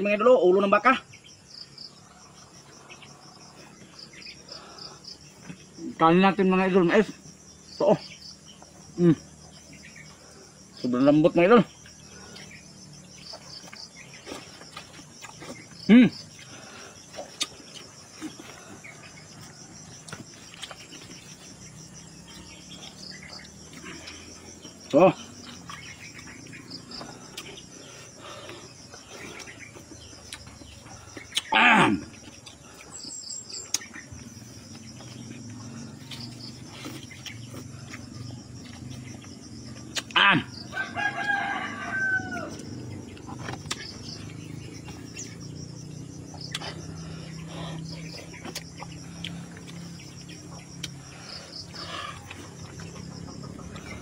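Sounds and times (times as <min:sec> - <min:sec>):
insects chirring: 0:00.0 - 0:54.0.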